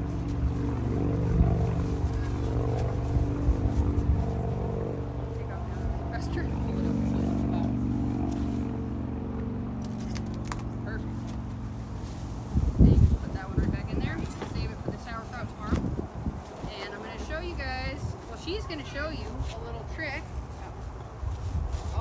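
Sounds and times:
wind buffeting microphone: 0.0s - 9.2s, 11.7s - 22.0s
low engine hum: 0.0s - 22.0s.

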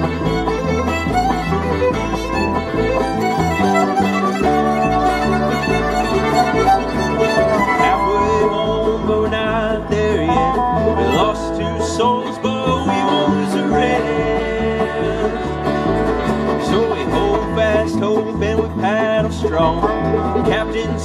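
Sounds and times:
bluegrass band playing: 0.0s - 21.0s.

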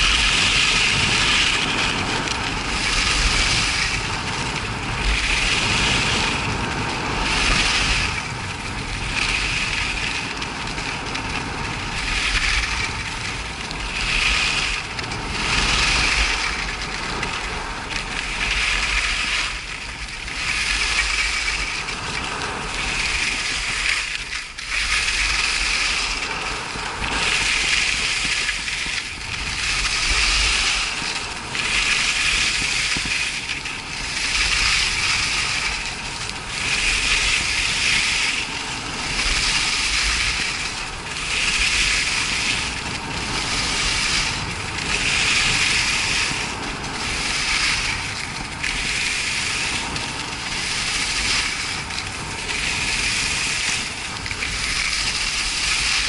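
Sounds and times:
skis scraping on snow: 0.0s - 56.0s.

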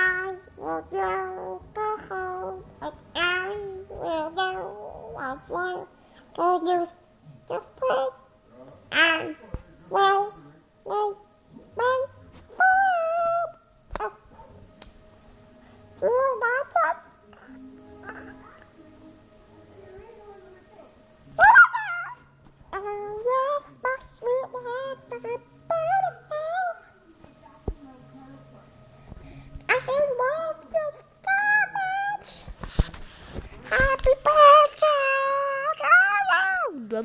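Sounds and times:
breathy hiss: 5.9s - 6.4s.

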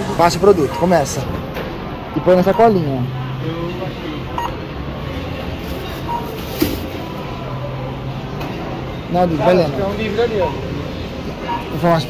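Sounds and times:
barcode scanner beeps: 0.6s - 1.2s, 2.4s - 2.8s, 4.4s - 4.6s, 6.0s - 6.4s, 11.4s - 11.8s.

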